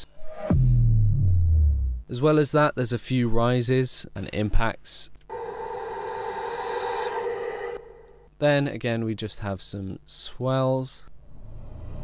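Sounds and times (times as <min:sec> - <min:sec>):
droning synthetic riser tone: 0:05.3 - 0:08.3.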